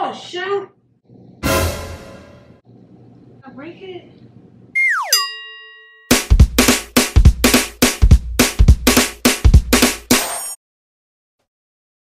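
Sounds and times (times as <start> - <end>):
cartoon falling whistle: 4.8 - 5.3
bright bell ding: 5.1 - 6.3.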